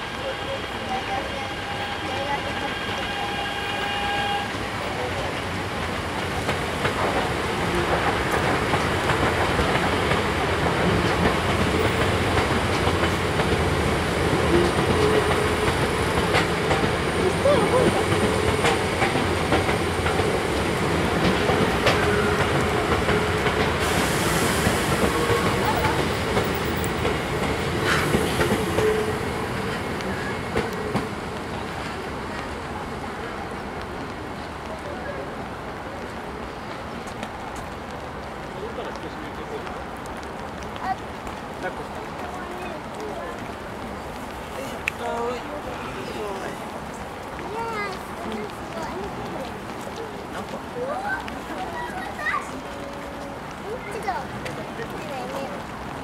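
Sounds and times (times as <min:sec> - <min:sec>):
train horn: 0:00.0 - 0:04.8, 0:27.9 - 0:29.3
train rolling past: 0:00.0 - 0:56.0.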